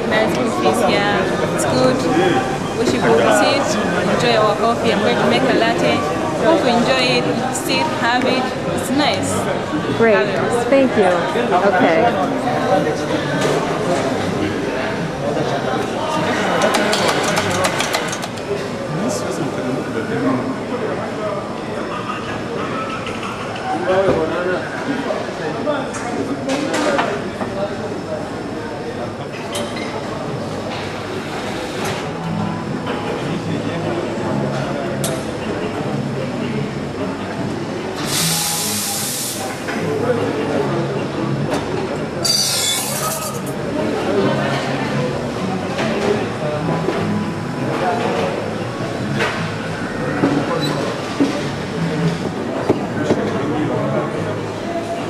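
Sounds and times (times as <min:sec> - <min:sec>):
cafe chatter: 0:00.0 - 0:55.0
steam wand hissing: 0:38.0 - 0:39.6.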